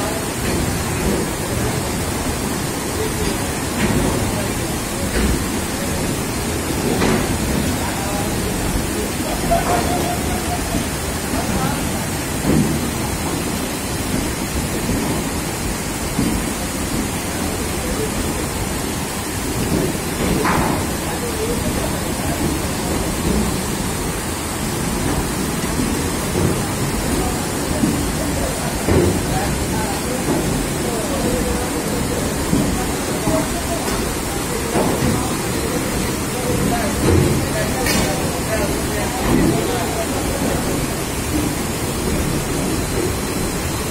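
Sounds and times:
heavy rain falling: 0.0s - 43.9s
water splashing under wheels: 0.0s - 43.9s.

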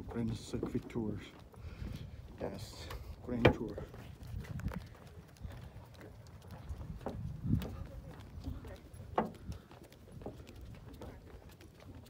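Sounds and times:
footsteps on wooden boards: 0.0s - 12.0s.

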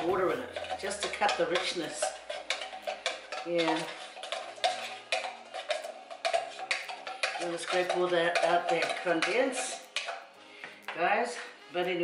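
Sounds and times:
metal spoon scraping a tin: 0.0s - 11.4s
faint background music: 0.0s - 12.0s.

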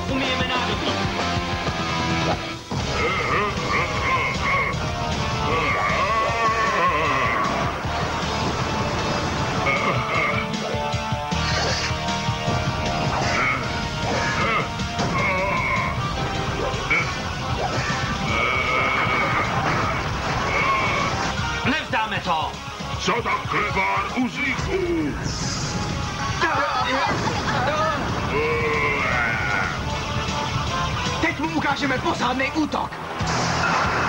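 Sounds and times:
action music: 0.0s - 34.0s
metal clashes and crashes: 12.4s - 21.6s, 26.4s - 30.3s.

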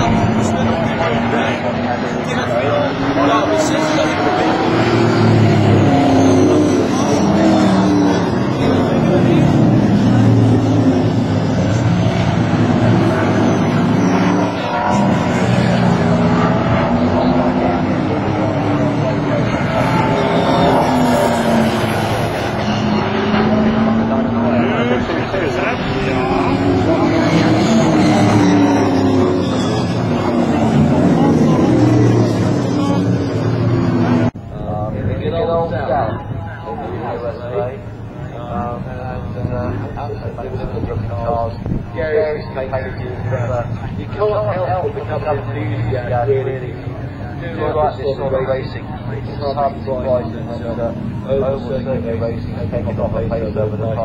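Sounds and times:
race car engines passing: 0.0s - 54.0s.

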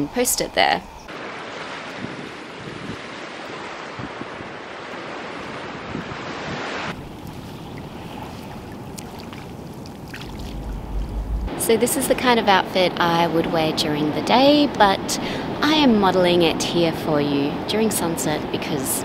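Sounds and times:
wind on microphone: 0.9s - 19.0s
shallow water washing at shore: 1.1s - 11.5s
sea surf washing on beach: 1.1s - 12.4s.

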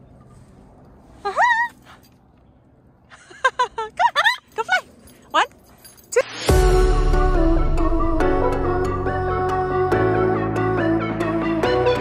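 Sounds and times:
low outdoor background noise: 0.0s - 6.4s.

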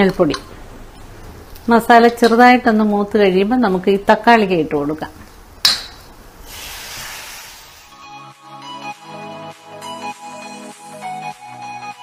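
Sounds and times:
food sizzling: 0.0s - 8.0s
background music: 7.9s - 12.0s.

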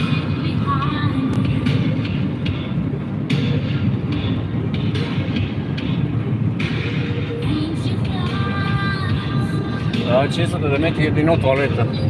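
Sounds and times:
car road noise: 0.0s - 12.0s.

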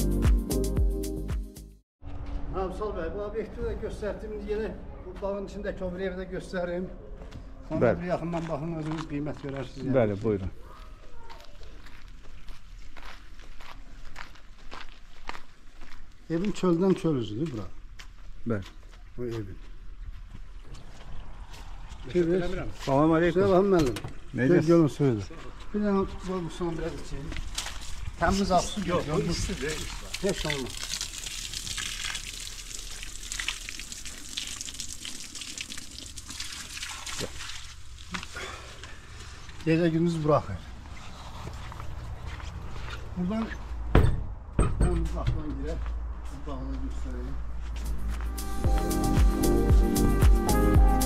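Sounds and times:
footsteps on tile path: 7.1s - 23.7s, 25.2s - 30.0s, 37.2s - 43.8s, 45.0s - 49.4s
water trickling and splashing: 18.8s - 39.6s.

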